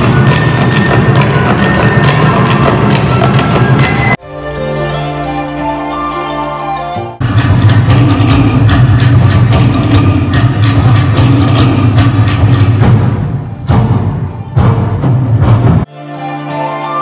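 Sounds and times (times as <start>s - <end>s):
wooden slit drums playing: 0.0s - 4.2s, 7.0s - 15.9s
deep bass drum: 7.2s - 15.9s.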